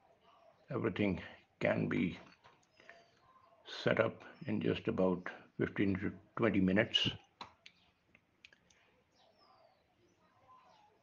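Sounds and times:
faint clicks: 7.4 - 8.9.

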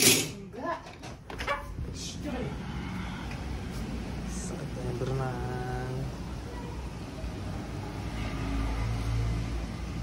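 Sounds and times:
voices: 4.2 - 8.4.

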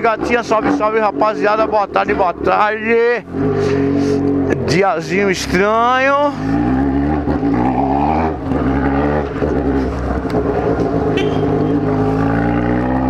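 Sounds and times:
motorcycle engine running: 0.0 - 13.0.

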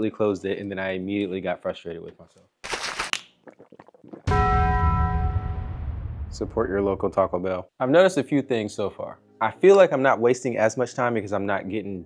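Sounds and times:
bell-like chime ringing: 4.3 - 6.1
deep low boom: 4.3 - 7.3.

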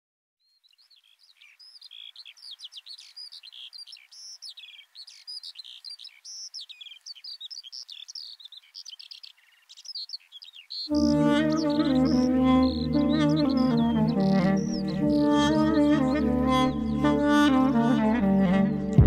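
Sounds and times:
songbirds singing and chirping: 0.4 - 18.8
soft outdoor background: 0.4 - 19.0.

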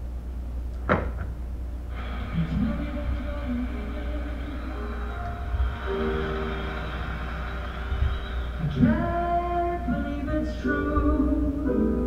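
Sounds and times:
steady low hum: 0.0 - 12.0
music with long held chords: 1.9 - 12.0.

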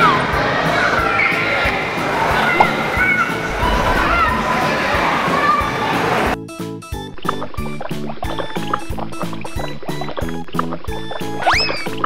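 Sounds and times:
children's voices hubbub: 0.0 - 6.4
background music: 0.0 - 12.0.

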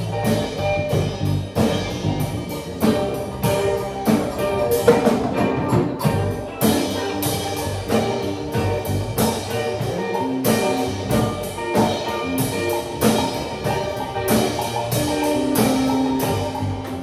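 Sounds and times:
drum kit beat with cymbals: 0.0 - 17.0
electric bass: 0.0 - 17.0
keyboard: 0.0 - 17.0.

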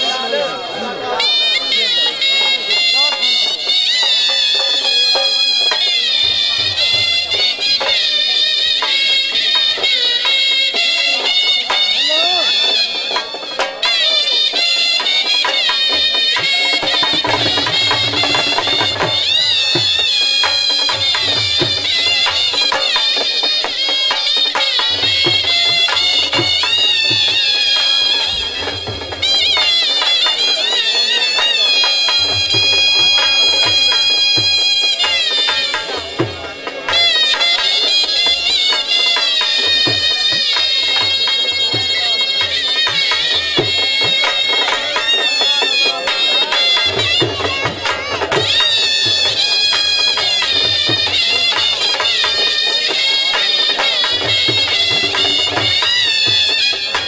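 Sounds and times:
shehnai reedy melody: 0.0 - 57.0
drum beat: 2.4 - 57.0.

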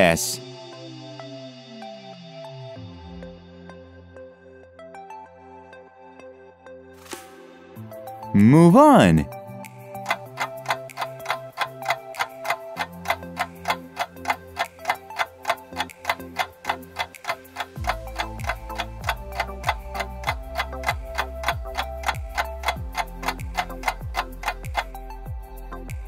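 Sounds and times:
countdown clock ticking: 0.0 - 0.4, 8.4 - 26.0
background music with bass: 0.0 - 0.6, 7.8 - 26.0.

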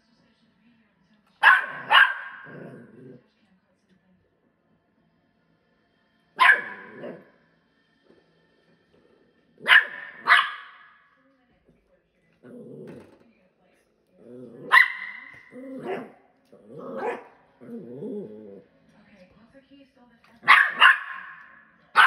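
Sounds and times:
puppy barking: 1.4 - 3.0, 6.4 - 7.3, 9.6 - 11.0, 14.6 - 17.8, 20.4 - 22.0
puppy growling: 1.8 - 3.3, 12.4 - 13.2, 14.2 - 18.7.

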